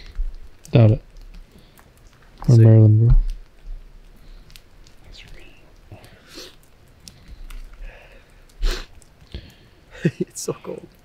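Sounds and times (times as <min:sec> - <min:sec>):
drips ticking: 0:00.0 - 0:11.0
light rain falling: 0:00.0 - 0:11.0.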